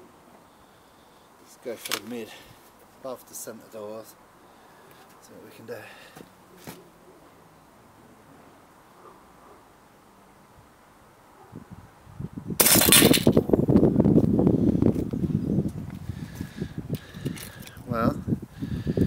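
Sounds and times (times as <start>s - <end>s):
rustling and clatter: 12.6s - 13.4s.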